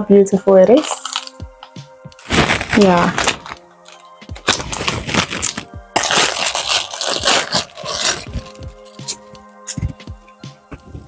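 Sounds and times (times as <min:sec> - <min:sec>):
background music: 0:00.0 - 0:11.0
plastic bag crackling and rustling: 0:00.7 - 0:01.4, 0:02.2 - 0:08.6.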